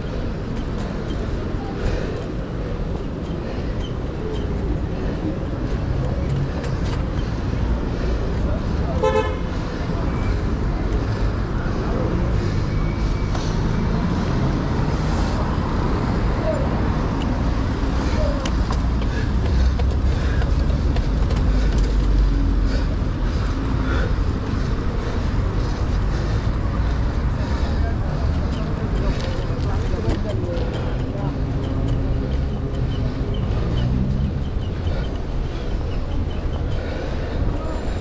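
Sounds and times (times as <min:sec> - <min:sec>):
city street traffic: 0:00.0 - 0:38.0.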